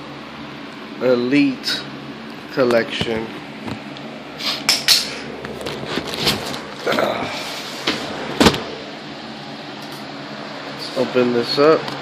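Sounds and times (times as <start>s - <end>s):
cardboard box scrapes and rustles: 5.6s - 6.8s.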